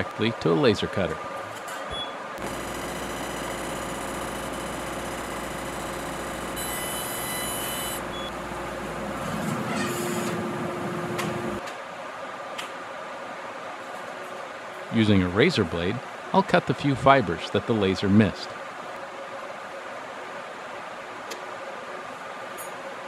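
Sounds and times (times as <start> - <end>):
laser cutter running: 2.4 - 11.6
room noise: 2.4 - 11.6.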